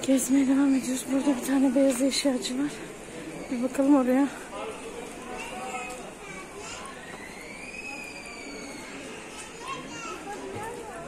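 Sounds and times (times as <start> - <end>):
distant chatter of voices: 0.0 - 11.0.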